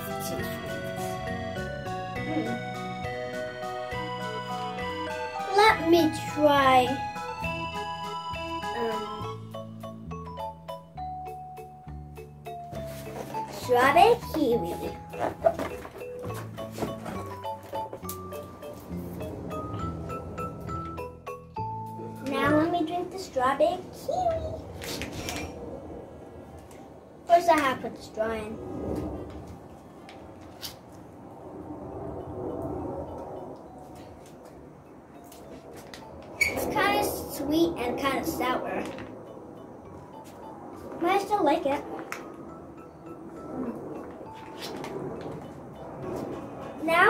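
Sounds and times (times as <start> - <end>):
melody over bass line: 0.0 - 22.7
girl's voice: 2.2 - 2.6, 5.4 - 7.0, 8.7 - 9.3, 13.4 - 15.0, 22.1 - 24.8, 27.3 - 28.6, 36.6 - 39.0, 40.9 - 42.0, 46.8 - 47.0.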